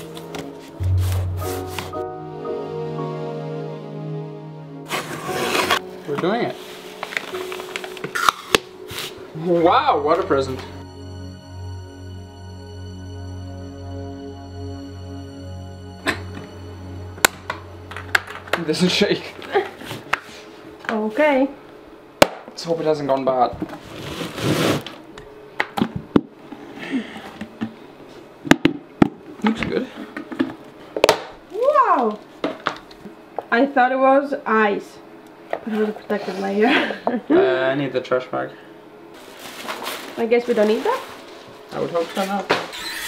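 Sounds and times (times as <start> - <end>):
soft background music: 0.0 - 20.1.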